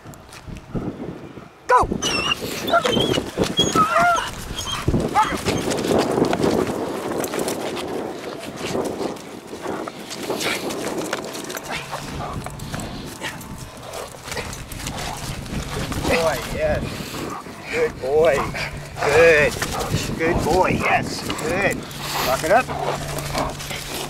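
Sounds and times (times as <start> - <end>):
dog sounds: 1.7 - 6.1, 9.6 - 24.0
scuffling: 2.5 - 24.0.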